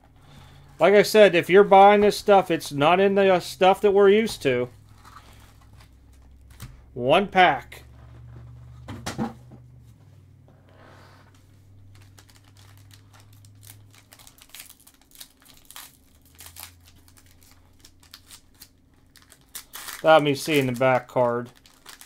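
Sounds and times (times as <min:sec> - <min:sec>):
foil wrapper crinkling: 0:11.8 - 0:22.0.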